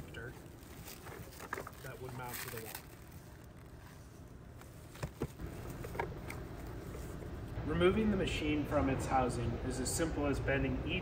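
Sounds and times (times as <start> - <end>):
steady low hum: 0.0 - 11.0
handling clicks and knocks: 4.6 - 7.2.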